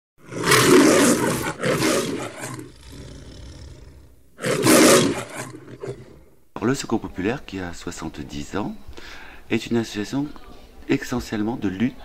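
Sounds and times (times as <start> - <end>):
loud roaring surges: 0.3 - 6.2
quieter hiss: 3.8 - 11.6.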